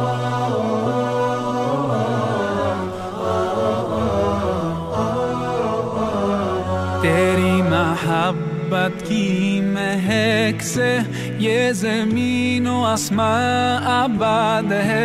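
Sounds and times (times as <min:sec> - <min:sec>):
voices holding low drone: 0:00.0 - 0:12.4
solo voice ornamented chanting: 0:00.0 - 0:15.0.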